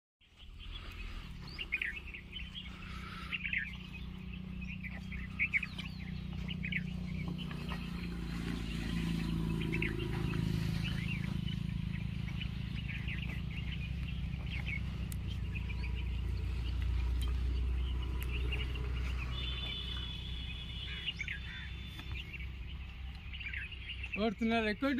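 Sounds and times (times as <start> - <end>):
small birds chirping: 0.2 - 24.9
low steady rumble: 0.3 - 23.9.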